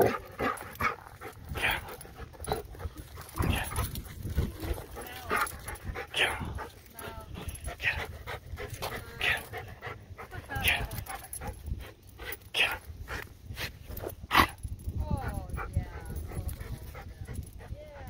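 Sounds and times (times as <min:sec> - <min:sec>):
dogs vocalizing while playing: 0:00.0 - 0:18.0.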